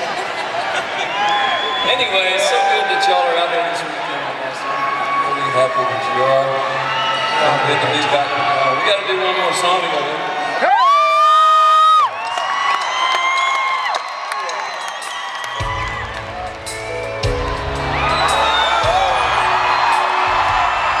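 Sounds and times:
crowd cheering and whooping: 0.0s - 3.8s, 4.4s - 21.0s
live band playing: 15.0s - 21.0s
bass notes: 15.6s - 21.0s.

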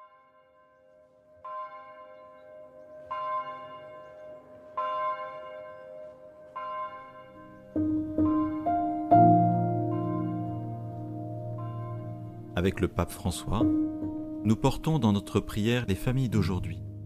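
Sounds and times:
piano music: 1.5s - 17.0s.

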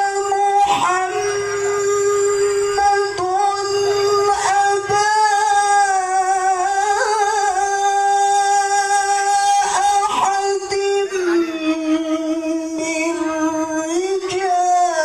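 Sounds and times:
man reciting melodically: 0.0s - 15.0s.

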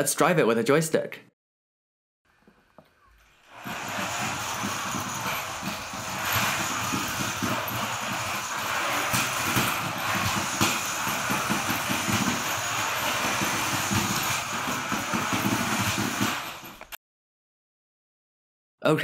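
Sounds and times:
wheels rolling on concrete: 2.3s - 17.0s.

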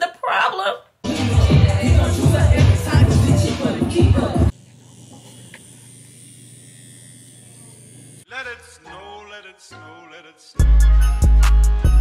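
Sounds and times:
electric tattoo machine buzzing: 1.4s - 8.3s.

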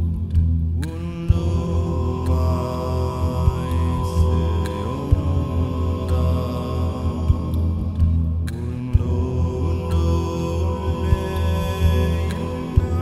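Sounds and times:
low drone: 0.0s - 13.0s
men singing chant harmonies: 0.8s - 13.0s.

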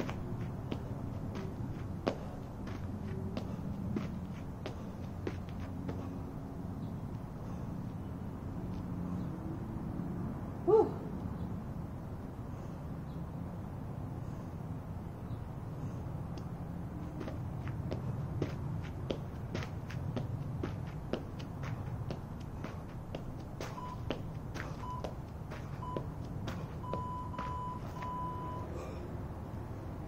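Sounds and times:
jump rope slapping pavement: 0.0s - 6.2s, 16.3s - 28.0s
interval timer beeps: 23.7s - 24.1s, 24.8s - 25.2s, 25.8s - 26.1s, 26.8s - 28.7s.

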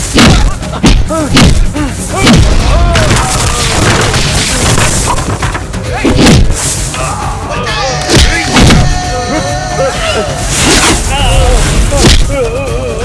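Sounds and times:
heavy punch impacts: 0.1s - 4.1s, 6.1s - 6.6s.

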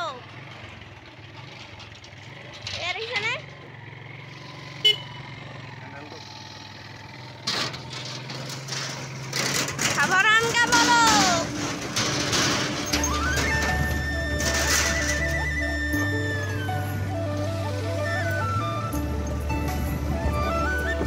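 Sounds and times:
motorcycle engine running: 0.0s - 14.3s
road and wind noise: 0.0s - 21.0s.

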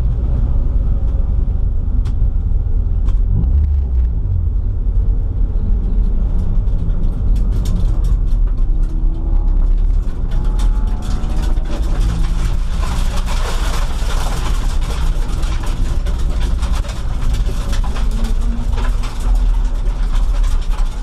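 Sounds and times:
race car engine rumbling: 0.0s - 21.0s
clicks and rattles in cabin: 6.0s - 21.0s.

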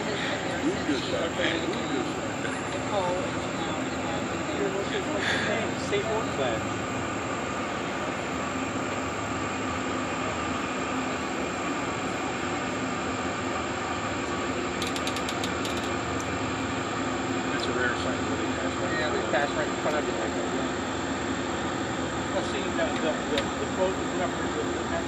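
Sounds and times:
diesel engines droning: 0.0s - 25.0s.

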